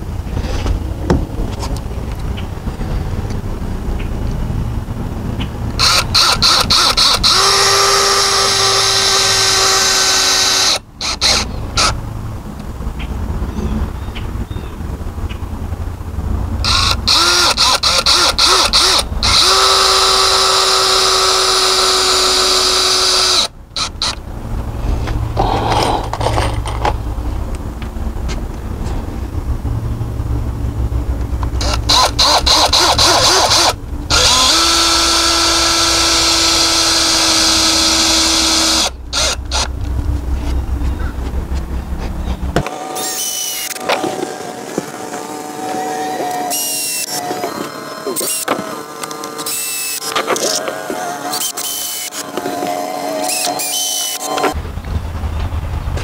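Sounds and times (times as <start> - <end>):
cordless drill driving screws: 5.8 - 12.0, 16.6 - 24.2, 31.6 - 39.7, 42.9 - 54.6.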